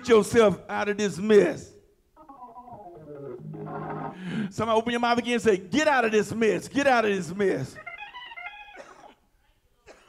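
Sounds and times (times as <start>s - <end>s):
man coughing: 8.7s - 9.3s.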